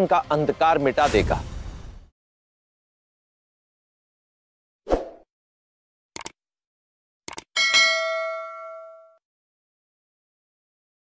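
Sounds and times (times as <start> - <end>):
bell chime ding: 7.6 - 9.2.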